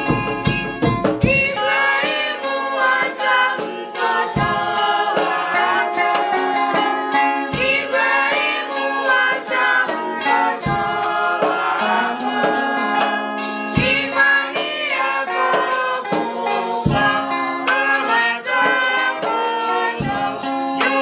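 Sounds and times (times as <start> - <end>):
electric guitar playing: 0.0 - 21.0
choir and congregation singing hymn: 1.2 - 21.0.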